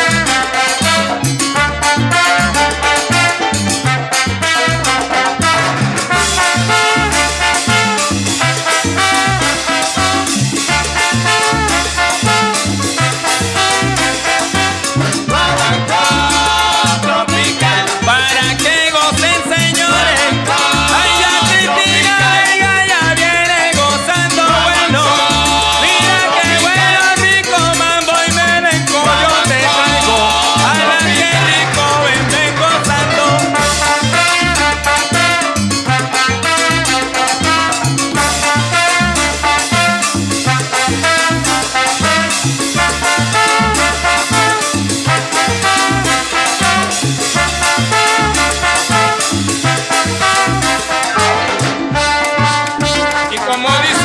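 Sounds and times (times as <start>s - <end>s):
band melody lines: 0.0s - 54.0s
bass line: 0.0s - 54.0s
driving percussion rhythm: 0.0s - 54.0s
melody line: 26.6s - 38.2s.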